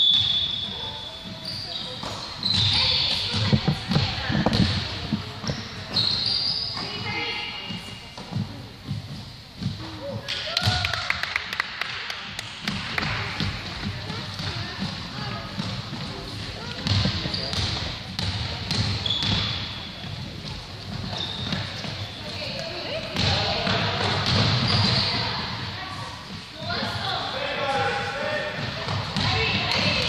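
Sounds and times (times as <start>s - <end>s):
basketball bouncing on hardwood floor: 2.5s - 4.8s, 16.8s - 19.6s, 22.6s - 25.0s, 28.9s - 30.0s.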